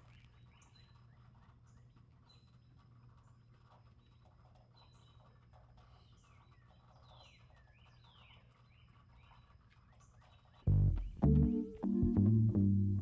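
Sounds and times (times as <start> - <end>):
low steady hum: 10.7 - 13.0.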